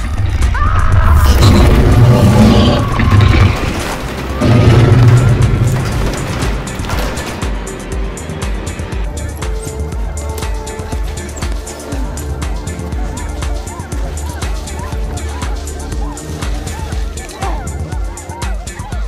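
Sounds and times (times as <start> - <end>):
film soundtrack music: 0.0 - 19.0.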